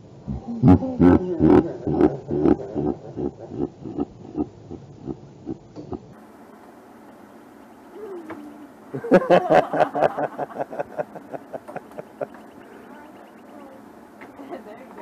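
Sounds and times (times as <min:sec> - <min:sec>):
woman laughing hard: 0:00.8 - 0:04.1, 0:08.9 - 0:12.4.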